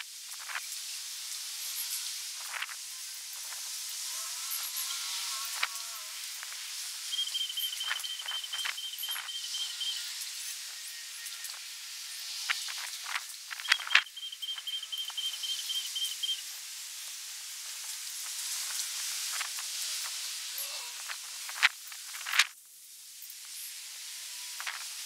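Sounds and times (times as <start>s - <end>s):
steady high hiss: 0.0s - 25.0s
high pulsed trill: 7.1s - 11.6s, 13.5s - 16.5s.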